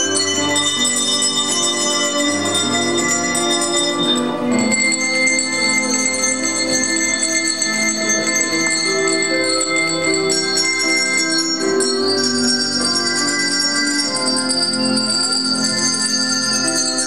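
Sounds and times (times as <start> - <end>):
handbells ringing: 0.0 - 17.0
musical accompaniment: 0.0 - 17.0.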